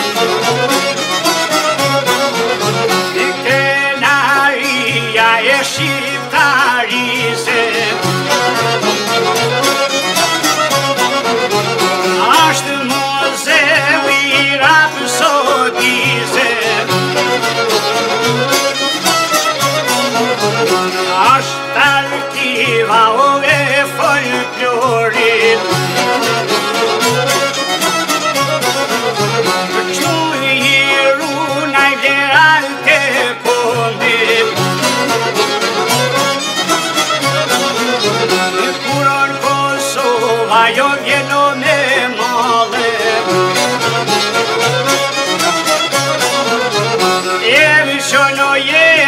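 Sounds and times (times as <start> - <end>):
accordion: 0.0 - 49.0
plucked lute: 0.0 - 49.0
violin melody: 0.0 - 49.0.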